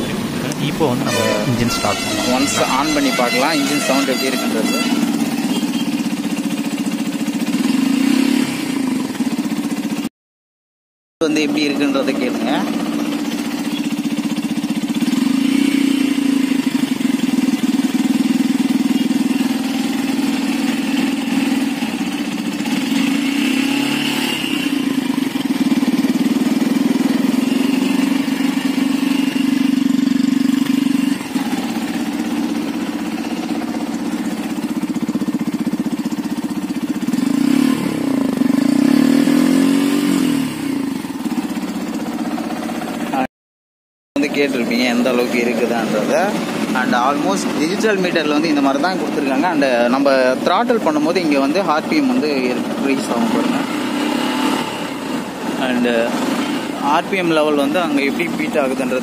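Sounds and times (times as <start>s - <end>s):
motorcycle engine idling: 0.0s - 10.1s, 11.2s - 43.3s, 44.2s - 59.0s.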